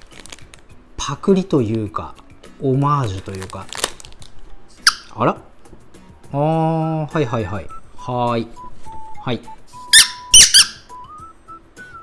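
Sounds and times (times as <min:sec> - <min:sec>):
squeaky dog toy squeaking: 0:04.8 - 0:05.2, 0:09.8 - 0:11.0.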